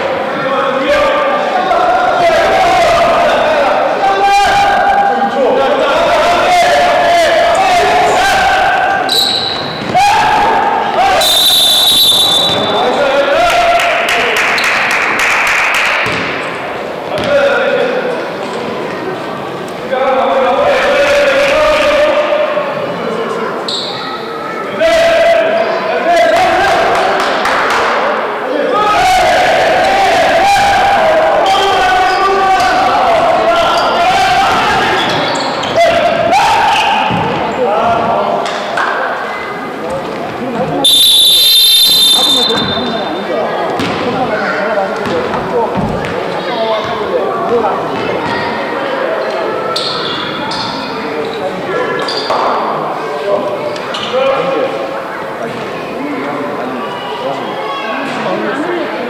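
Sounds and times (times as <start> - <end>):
shoe squeaks: 9.1 - 9.9, 23.7 - 24.2, 35.0 - 35.9, 49.7 - 51.4, 52.0 - 52.3
players calling out: 28.2 - 59.0.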